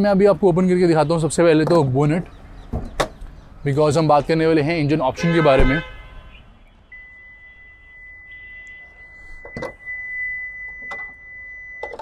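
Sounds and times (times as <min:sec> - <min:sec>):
car bonnet clicks and knocks: 0:02.7 - 0:03.2.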